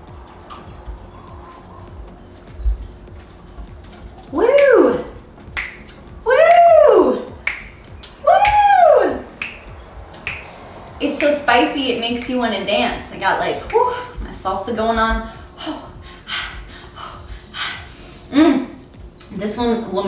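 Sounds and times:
woman talking: 4.3s - 5.2s, 6.2s - 7.3s, 11.0s - 16.0s, 18.3s - 20.0s
finger snaps: 4.5s - 4.9s, 5.5s - 10.6s, 18.9s - 19.3s.

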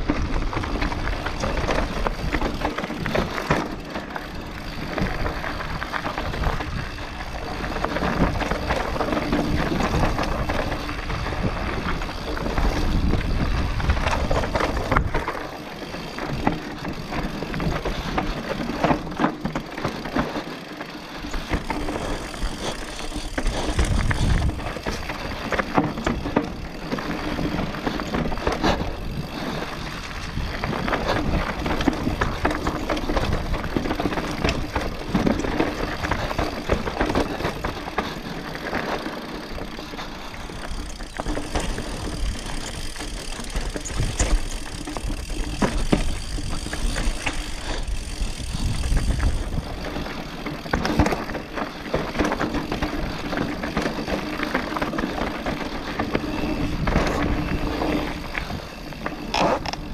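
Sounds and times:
bike rattling and knocking: 0.0s - 59.9s
bike tyres on loose ground: 0.0s - 59.9s.

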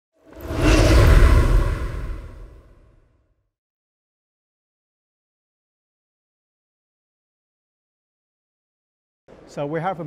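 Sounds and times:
whoosh with deep rumble: 0.2s - 3.1s.

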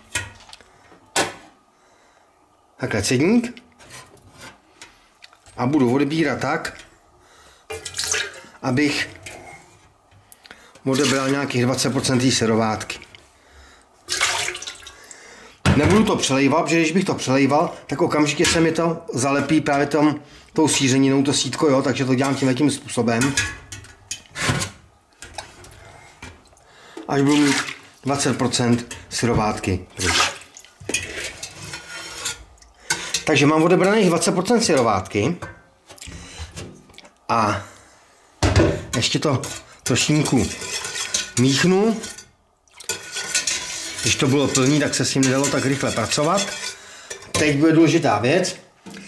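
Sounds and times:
strainer scraping steel pot: 27.2s - 29.1s, 30.0s - 35.0s, 39.0s - 47.7s.

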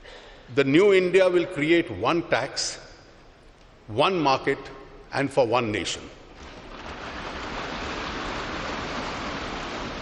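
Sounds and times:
audience applause: 6.4s - 10.0s.

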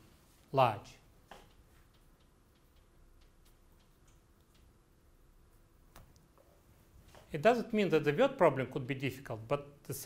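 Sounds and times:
faint irregular ticks: 1.4s - 5.0s.

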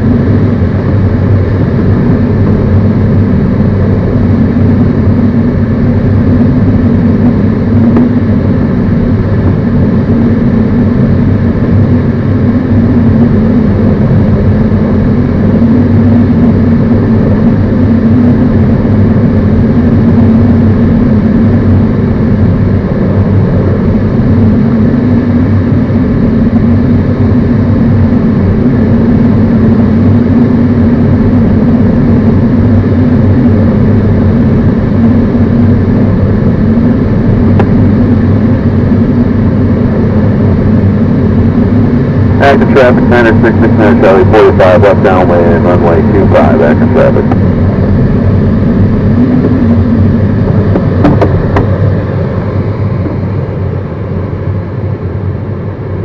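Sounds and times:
piston aircraft engine drone: 0.0s - 56.0s.

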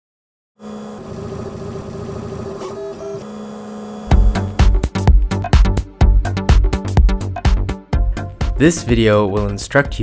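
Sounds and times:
printer stepper motors whining: 0.6s - 4.6s.

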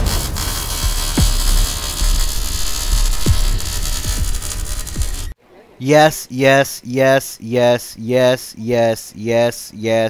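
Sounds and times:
deep bass drone: 0.0s - 5.4s
hiss: 0.0s - 5.4s.

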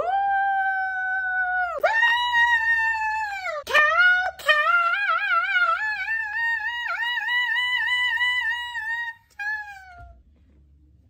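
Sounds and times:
man's high falsetto wail: 8.2s - 10.2s.

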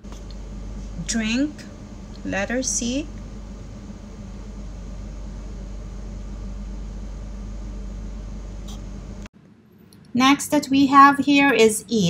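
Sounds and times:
steady low hum: 0.0s - 9.3s
room noise hiss: 0.0s - 10.4s.

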